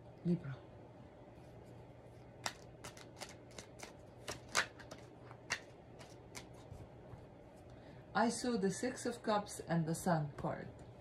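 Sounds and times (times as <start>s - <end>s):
cards being shuffled: 2.4s - 6.9s.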